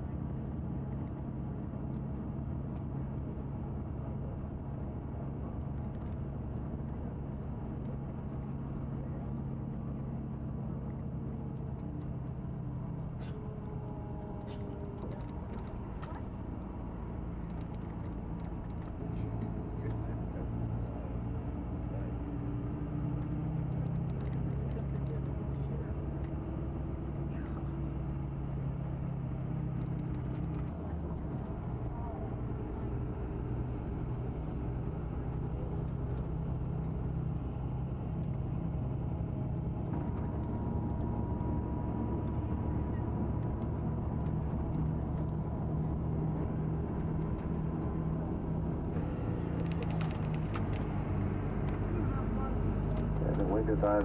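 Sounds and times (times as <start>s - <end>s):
coach engine running: 0.0s - 54.0s.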